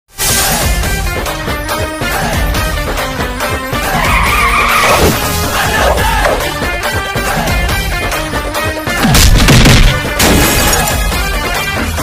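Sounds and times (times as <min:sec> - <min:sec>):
car tyres squealing: 0:03.8 - 0:06.3
film music with a beat: 0:05.2 - 0:10.2.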